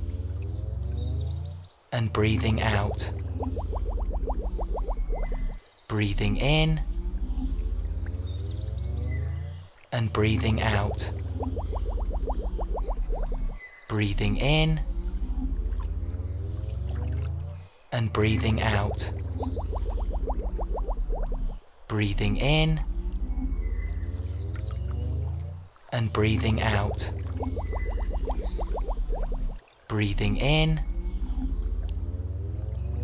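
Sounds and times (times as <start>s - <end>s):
steady low hum: 0.0s - 33.0s
cartoon bubbling bloops: 2.4s - 5.6s, 10.2s - 17.5s, 18.2s - 25.6s, 26.2s - 32.0s.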